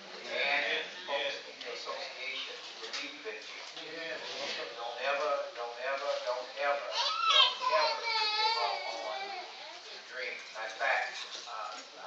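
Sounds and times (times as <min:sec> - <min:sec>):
small child whining: 0:06.9 - 0:09.8.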